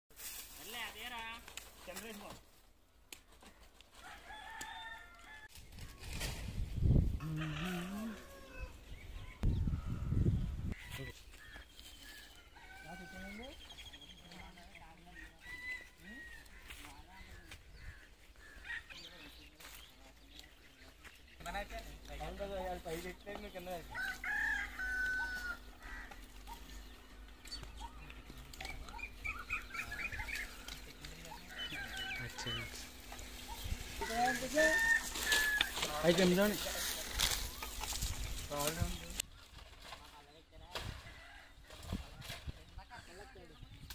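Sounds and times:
rooster crowing: 4.0 - 5.5, 7.2 - 8.8, 12.1 - 13.5, 23.9 - 26.3, 29.3 - 33.0, 34.0 - 36.0
birds chirping: 7.4 - 41.4.

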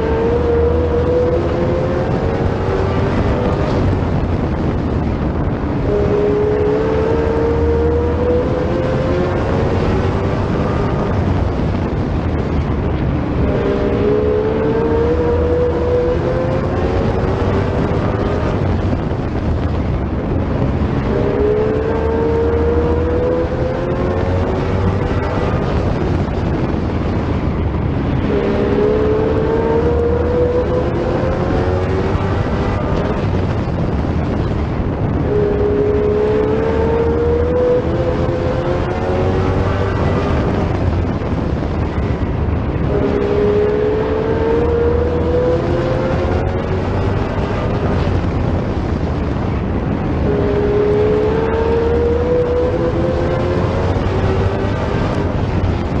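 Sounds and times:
race car engine: 0.0 - 56.0.

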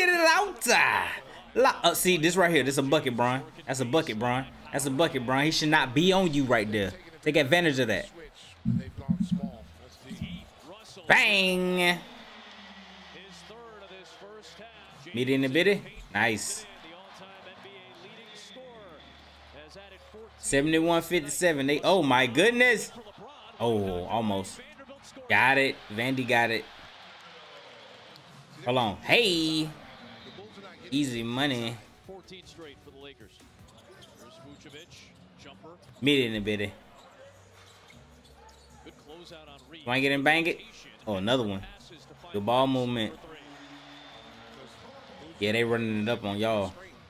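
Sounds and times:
commentator talking: 0.0 - 12.1, 15.1 - 16.8, 20.4 - 23.0, 23.6 - 24.7, 25.3 - 26.7, 39.8 - 43.5, 45.3 - 47.0
basketball dribbling on hardwood: 8.7 - 10.4.

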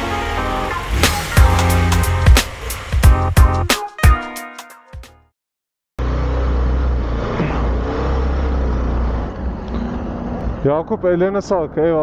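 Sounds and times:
city road traffic rumble: 0.0 - 3.7, 6.0 - 12.0.

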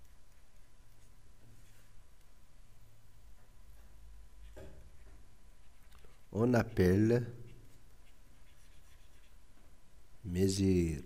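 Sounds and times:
stylus scratching on a tablet: 0.0 - 2.0, 4.4 - 9.7.

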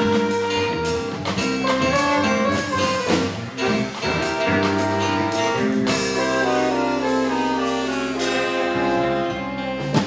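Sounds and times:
saxophone ensemble playing jazz: 0.0 - 10.0.

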